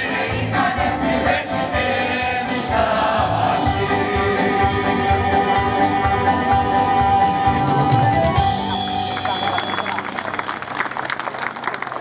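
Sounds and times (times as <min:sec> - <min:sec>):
audience applauding: 0:08.4 - 0:12.0.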